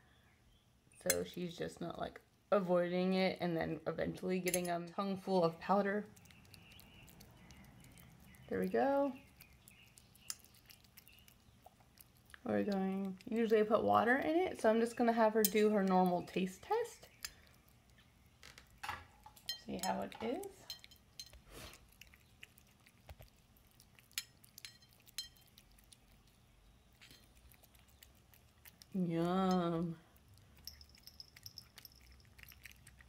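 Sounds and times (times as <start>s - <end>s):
cat chewing wet food: 6.1s - 14.3s, 17.1s - 19.5s, 20.1s - 29.1s, 29.9s - 33.0s
metallic clinks against bowl: 19.4s - 21.4s, 24.2s - 25.5s, 30.6s - 32.7s.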